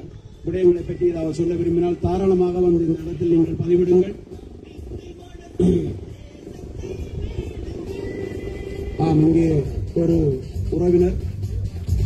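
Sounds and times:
crowd murmuring and calling: 0.0 - 12.0
low rumble: 0.0 - 12.0.

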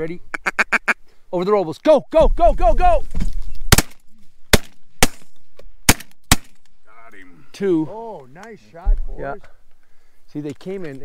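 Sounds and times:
shotgun shots: 3.7 - 6.6.

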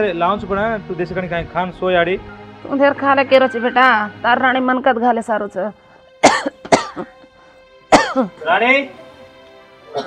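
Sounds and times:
woman coughing: 6.2 - 7.2, 7.9 - 8.4.

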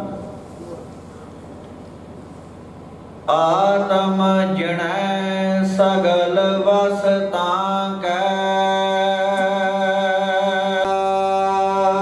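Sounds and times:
steady drone: 0.0 - 1.5, 2.8 - 12.0
man chanting into microphone: 3.3 - 12.0.

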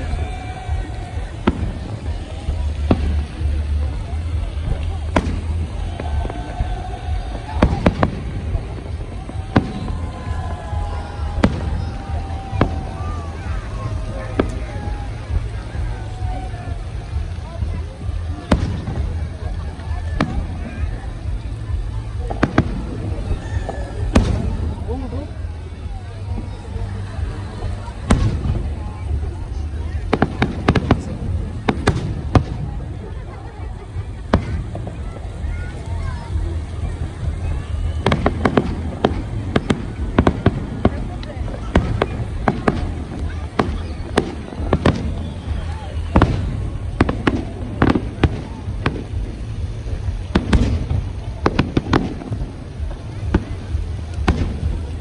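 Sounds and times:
distant firework bangs: 0.0 - 55.0.

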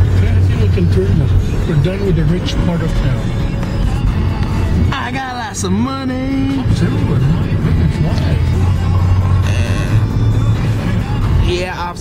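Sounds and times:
engine and road rumble: 0.0 - 12.0
music on car stereo: 0.0 - 12.0.

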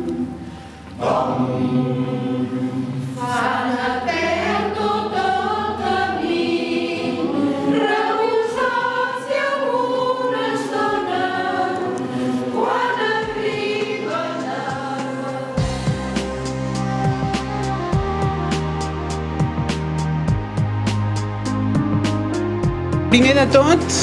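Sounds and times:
mixed choir singing: 0.0 - 17.6.

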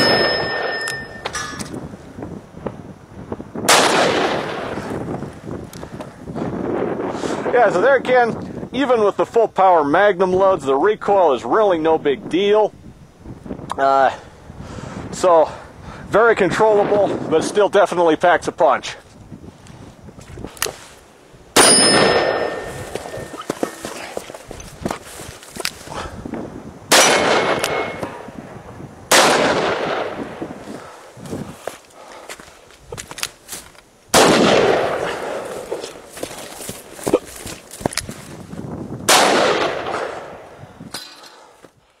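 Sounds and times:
steel target ringing: 0.0 - 1.7, 21.6 - 23.8, 26.9 - 28.2.

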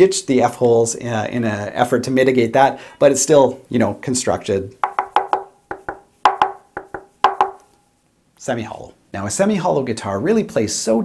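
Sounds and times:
knuckle knocks on guitar body: 4.8 - 7.7.

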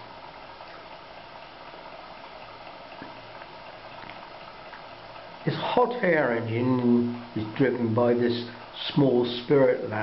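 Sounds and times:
model hot air engine running: 5.3 - 10.0.

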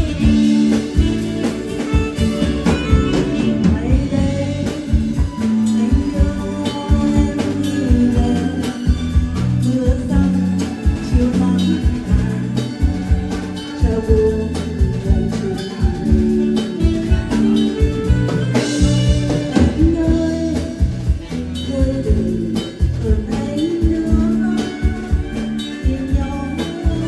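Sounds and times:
drum kit beat: 0.0 - 27.0
live band playing: 0.0 - 27.0
woman singing through microphone: 0.0 - 27.0.

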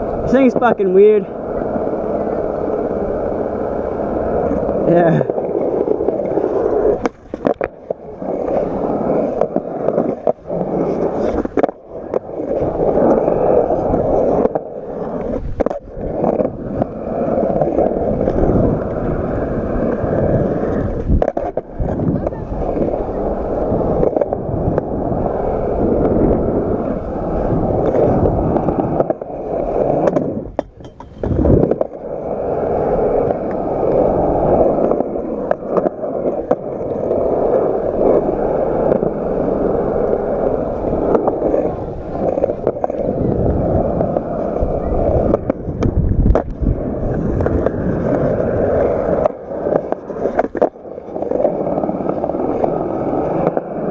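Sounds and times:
skateboard wheels rolling on concrete: 0.0 - 53.9.

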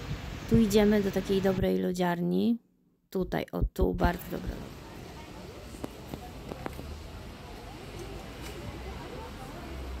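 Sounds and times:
indistinct voices of passers-by: 4.2 - 10.0.

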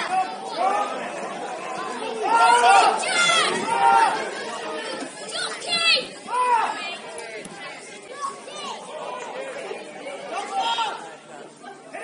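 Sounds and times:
background chatter: 0.0 - 12.0
crowd shouting and calling: 0.0 - 12.0.

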